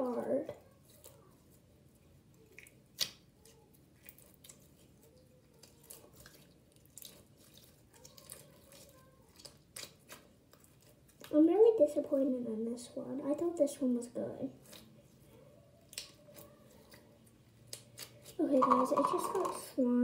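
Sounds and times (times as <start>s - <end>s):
girl talking: 0.0s - 1.4s, 8.0s - 9.4s, 11.3s - 14.6s, 18.4s - 20.0s.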